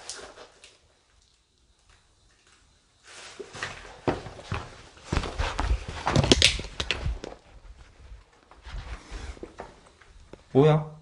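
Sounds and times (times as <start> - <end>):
footsteps on tiled floor: 3.3 - 9.0.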